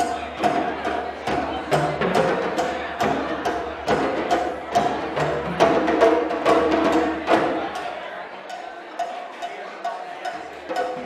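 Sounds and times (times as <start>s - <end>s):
hand drum ensemble playing: 0.0s - 11.0s.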